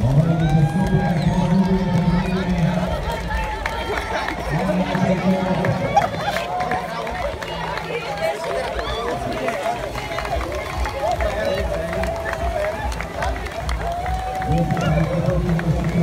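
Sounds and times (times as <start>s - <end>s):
crowd voices: 0.0s - 16.0s
footsteps running on pavement: 0.0s - 16.0s.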